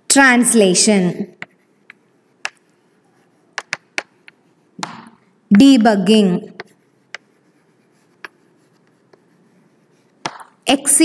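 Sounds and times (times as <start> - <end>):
chalk scratching on chalkboard: 1.2 - 11.0
chalk taps: 1.3 - 10.8.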